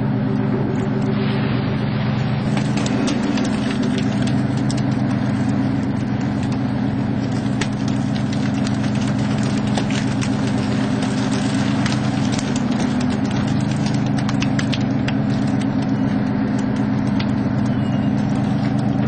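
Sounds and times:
boat engine low drone: 0.0s - 19.0s.

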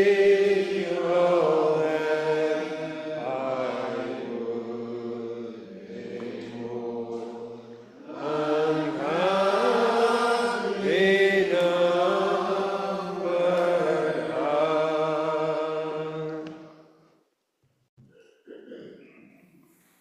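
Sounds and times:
congregation singing unaccompanied: 0.0s - 16.8s.

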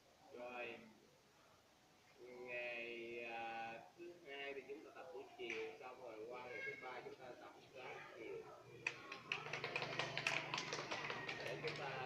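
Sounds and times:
children clapping: 8.8s - 12.0s.

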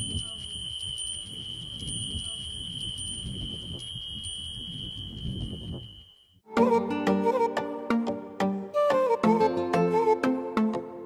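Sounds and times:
metal bells ringing: 0.0s - 6.3s.

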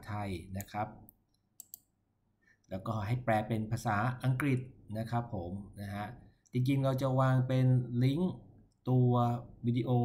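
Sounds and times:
computer mouse button clicking: 1.6s - 1.9s.

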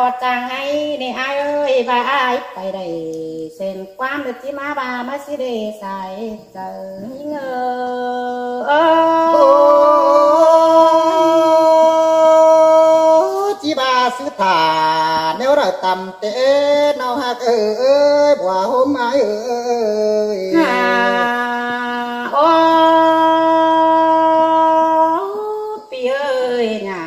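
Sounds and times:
person singing long vowel note: 8.1s - 13.4s, 19.1s - 25.8s
reedy wind instrument long note: 20.5s - 24.9s.

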